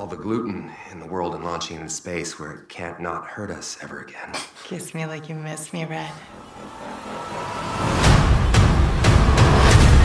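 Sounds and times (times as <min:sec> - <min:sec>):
trailer riser noise swell: 0:06.2 - 0:10.0.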